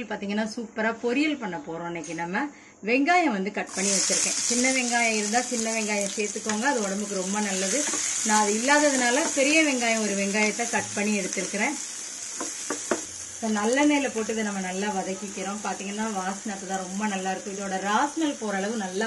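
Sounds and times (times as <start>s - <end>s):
onions sizzling in hot oil: 3.7s - 19.0s.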